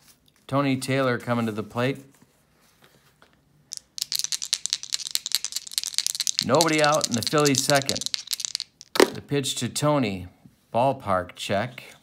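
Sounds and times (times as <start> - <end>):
dice rattling: 3.7 - 9.2.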